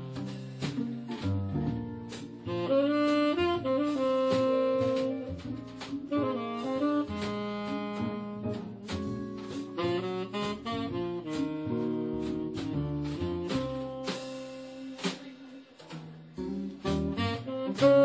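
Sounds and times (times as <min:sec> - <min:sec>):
tenor saxophone: 0:00.0 - 0:00.8, 0:02.0 - 0:15.2, 0:16.8 - 0:18.0
bass: 0:00.0 - 0:18.0
drums: 0:00.0 - 0:18.0
guitar: 0:00.0 - 0:18.0.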